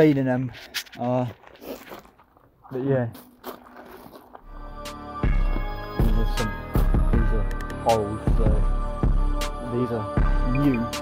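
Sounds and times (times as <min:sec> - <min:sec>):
footsteps on gravel: 0:00.0 - 0:04.6
music with deep bass: 0:04.5 - 0:11.0.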